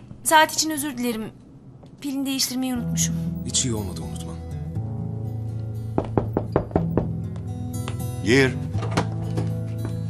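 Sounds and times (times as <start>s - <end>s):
soft background music: 0.2s - 10.0s
knocking on wooden door: 6.0s - 7.2s.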